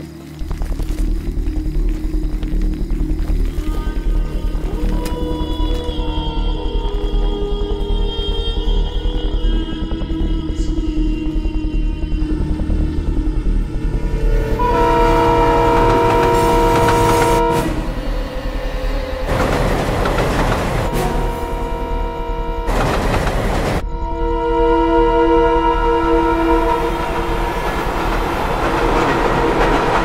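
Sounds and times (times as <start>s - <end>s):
low rumble of train: 1.3s - 30.0s
train air horn: 14.4s - 18.2s, 19.3s - 28.0s.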